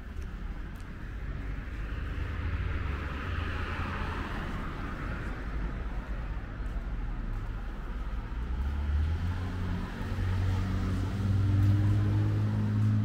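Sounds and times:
car engine accelerating: 8.4 - 13.0.

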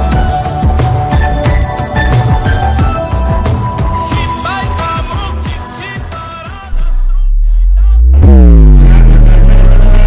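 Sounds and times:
background music: 0.0 - 10.0
deep bass: 6.7 - 10.0.

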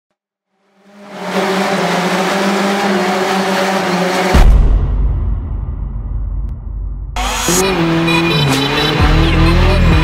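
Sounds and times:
car engine revving: 0.6 - 4.6, 7.1 - 10.0.

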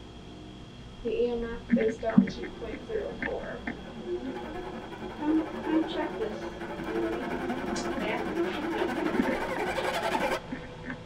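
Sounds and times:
indistinct voices: 1.6 - 10.4
held string notes of music: 1.9 - 11.0.

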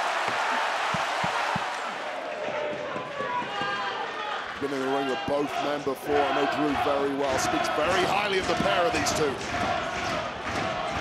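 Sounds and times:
large crowd cheering: 0.0 - 11.0
man's voice: 4.6 - 9.4.

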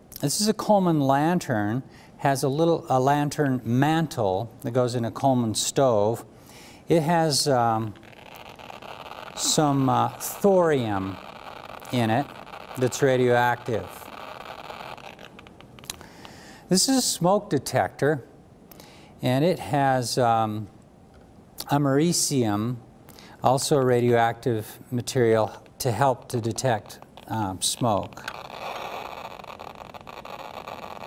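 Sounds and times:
geiger counter clicking rapidly: 8.0 - 15.6, 26.6 - 31.0.

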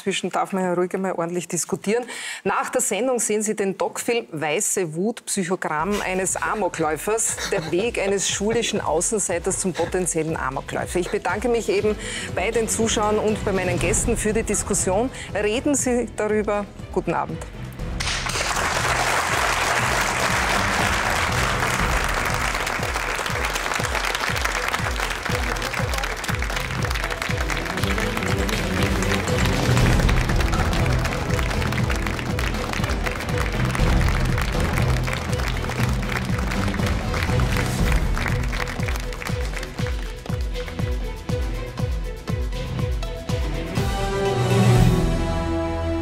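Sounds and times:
theme music with steady beat: 5.8 - 46.0
audience applauding: 18.0 - 40.9.

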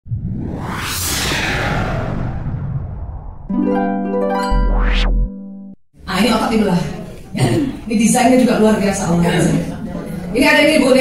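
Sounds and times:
low rumbling: 0.0 - 3.5
electronic whoosh: 0.1 - 3.5, 4.7 - 5.3.

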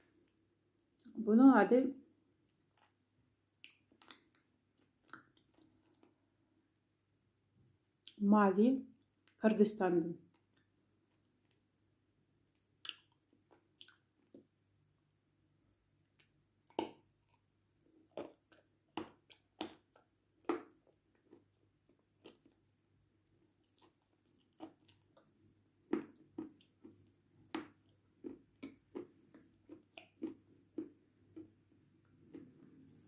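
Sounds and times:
crunching bites and chewing: 16.2 - 33.0.

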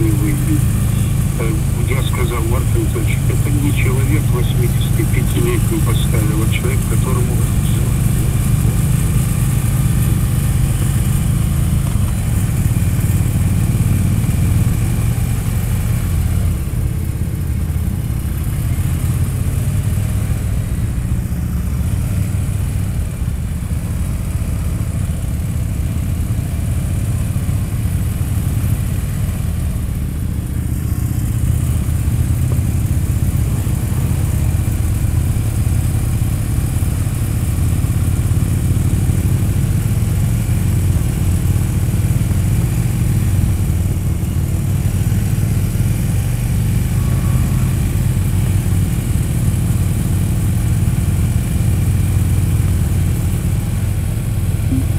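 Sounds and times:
motorcycle engines rumbling: 0.0 - 54.9.

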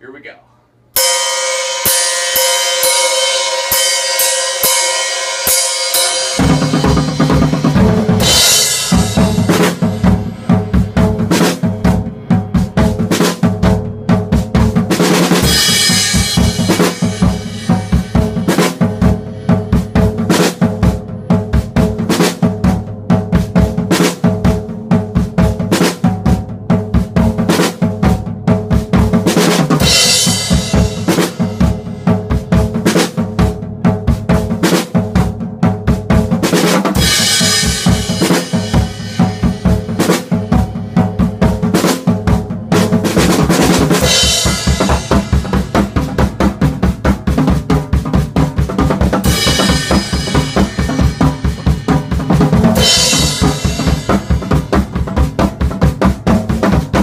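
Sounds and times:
drum kit playing rock groove: 1.0 - 57.0.

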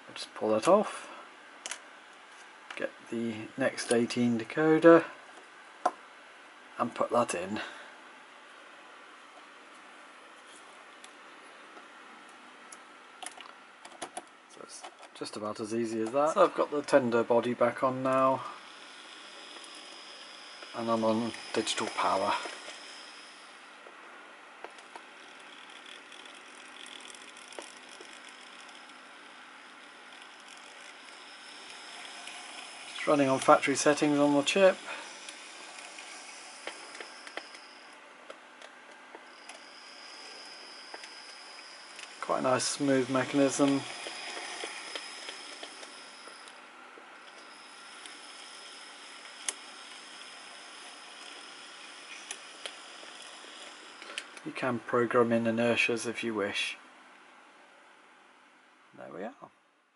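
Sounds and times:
thin high mechanism whine: 14.5 - 56.7
model locomotive motor whirring: 17.9 - 23.8, 24.6 - 38.0, 38.6 - 46.6, 47.2 - 54.4.

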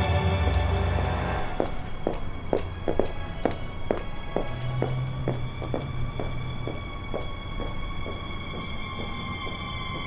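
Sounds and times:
music with sustained tones: 0.0 - 10.0
footsteps on hard ground: 0.5 - 10.0.

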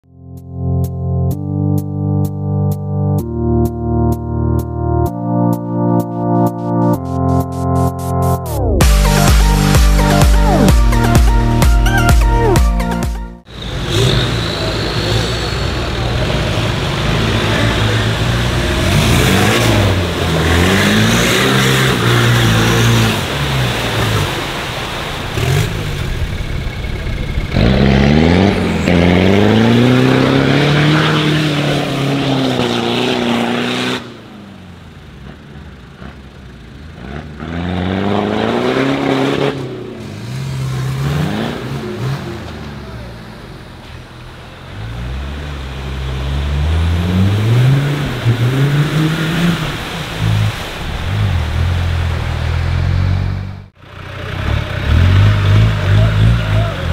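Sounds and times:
off-road engines revving: 13.5 - 56.9.

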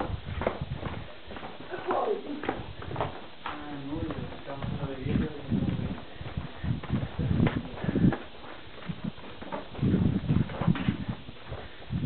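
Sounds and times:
footsteps on stone: 0.0 - 12.0.

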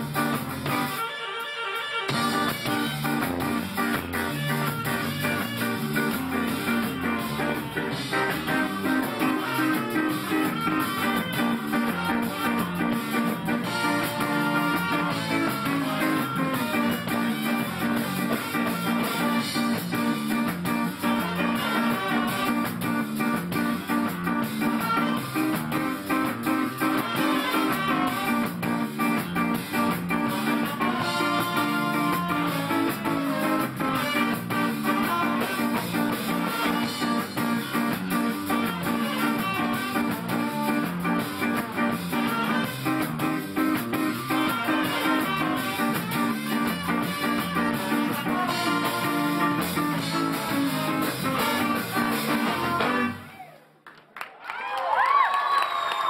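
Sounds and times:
trombone: 0.0 - 53.3
electric guitar: 0.0 - 53.7
saxophone: 0.0 - 53.7
drums: 0.0 - 53.8.

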